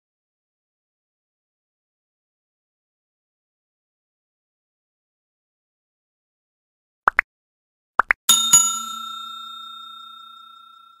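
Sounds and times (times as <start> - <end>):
notification bell ding: 8.3 - 11.0.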